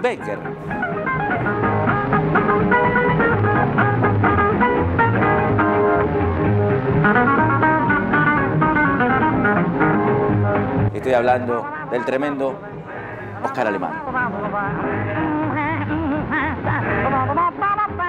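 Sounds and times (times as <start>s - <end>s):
bass line: 0.0s - 18.0s
plucked jazz guitar melody: 0.0s - 18.0s.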